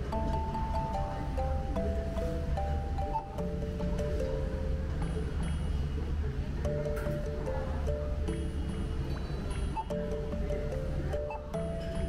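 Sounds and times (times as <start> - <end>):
melody of held notes: 0.0 - 12.0.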